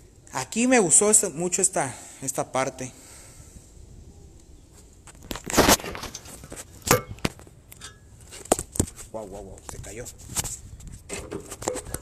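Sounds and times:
microphone handling noise: 4.7 - 7.5
loud scraping rustle: 4.7 - 9.2.

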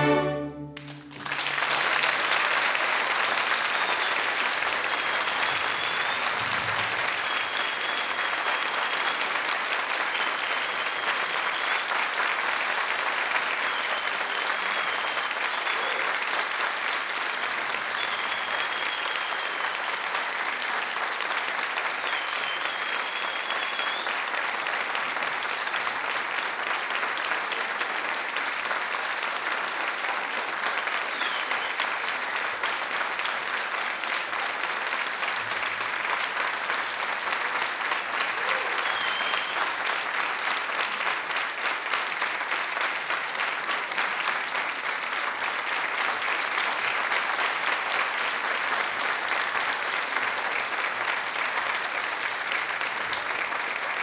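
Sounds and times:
brief high tones: 0.0 - 1.2
audience applauding: 0.0 - 54.0.

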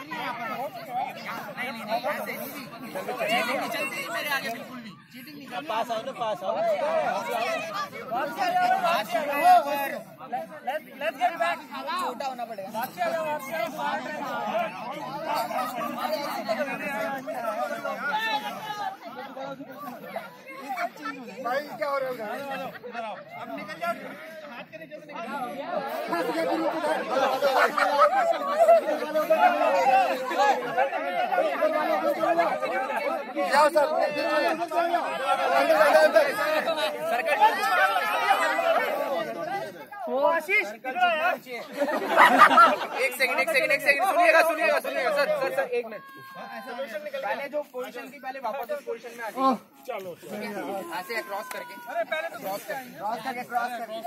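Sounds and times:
adults talking and calling out: 0.0 - 54.0
group of people chattering: 0.0 - 54.0.

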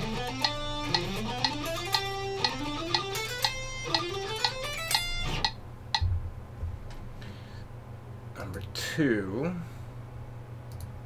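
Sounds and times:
electric guitar scale runs: 0.0 - 5.6
metronome clicking: 0.0 - 6.0.

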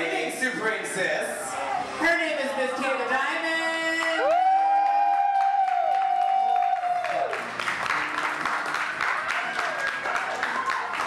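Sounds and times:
crowd applauding and cheering: 3.6 - 11.0.

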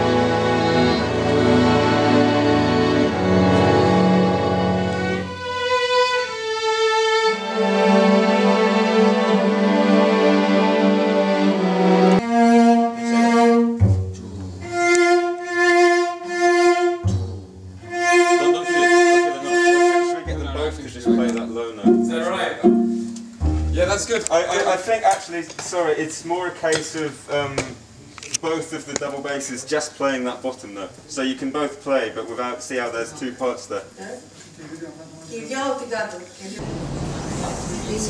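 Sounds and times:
string section playing: 0.0 - 24.8.

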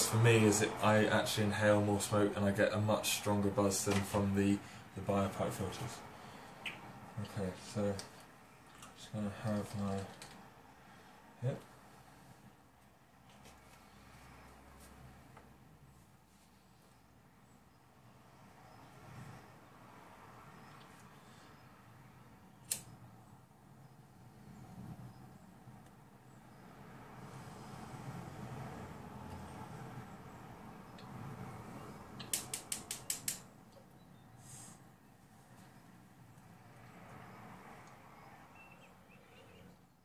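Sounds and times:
lighter clicking: 22.6 - 23.0, 32.2 - 33.4
breathy draw and exhale: 34.3 - 34.9
short hiss: 34.4 - 34.8.

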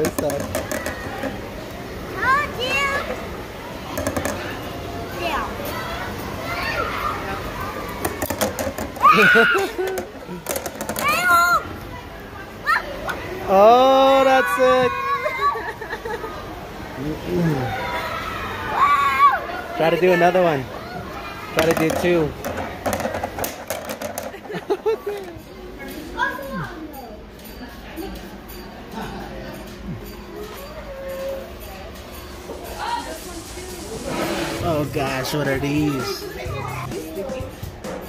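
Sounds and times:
rubber rings clattering on tabletop: 0.0 - 1.4, 3.9 - 4.5, 8.0 - 11.2, 21.6 - 25.3.

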